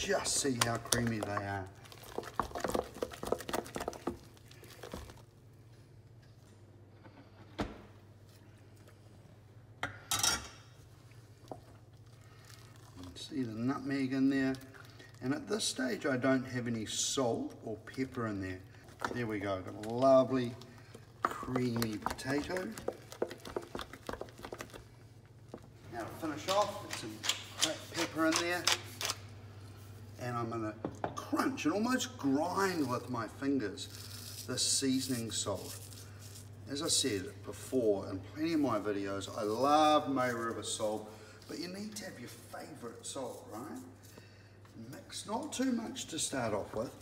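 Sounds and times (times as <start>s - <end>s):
spoon squelching mashed potatoes: 0.0s - 5.3s, 17.5s - 25.7s.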